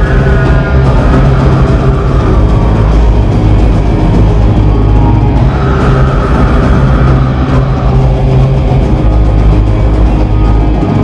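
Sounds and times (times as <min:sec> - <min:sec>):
metal band playing live: 0:00.0 - 0:11.0.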